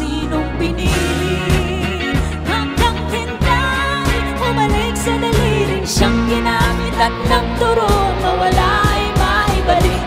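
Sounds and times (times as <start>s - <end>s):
bass notes: 0.0s - 10.0s
electric guitar: 0.0s - 10.0s
woman singing: 0.0s - 10.0s.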